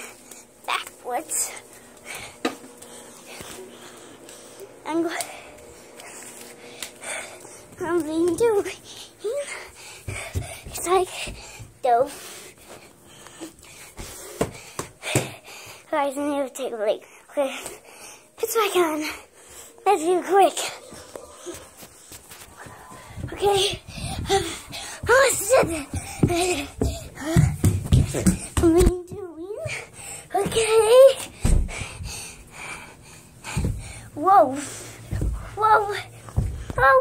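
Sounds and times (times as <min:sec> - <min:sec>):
child breathing hard: 0:02.0 - 0:07.8, 0:08.8 - 0:15.9, 0:19.0 - 0:28.6, 0:29.6 - 0:36.8.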